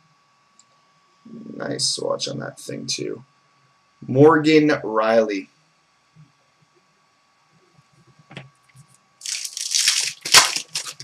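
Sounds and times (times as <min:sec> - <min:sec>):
plastic packaging crinkling: 0:09.2 - 0:11.0.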